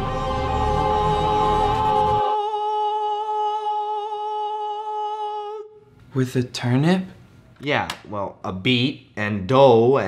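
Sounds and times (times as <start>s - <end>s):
person humming a long note: 0.0s - 5.8s.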